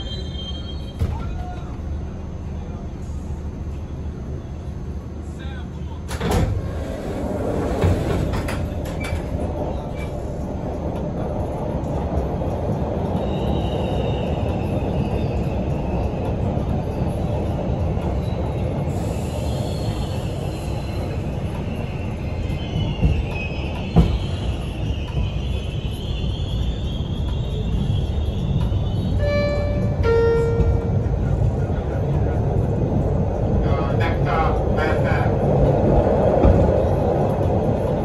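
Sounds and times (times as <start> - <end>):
wheels rumbling on rail: 0.0 - 38.0.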